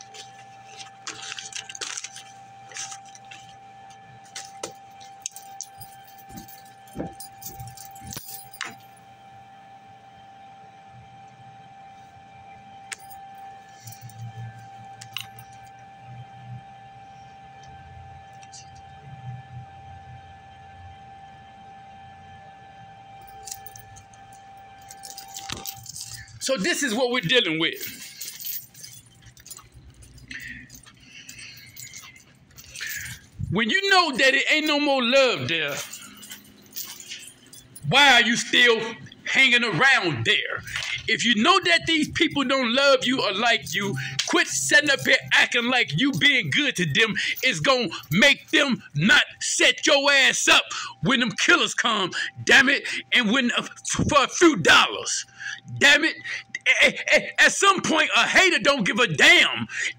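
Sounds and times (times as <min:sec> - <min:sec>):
keys clicking and clinking: 0:00.0 - 0:09.1, 0:12.9 - 0:15.8, 0:23.2 - 0:39.3, 0:40.3 - 0:50.4
high electrical hum: 0:00.0 - 0:59.9.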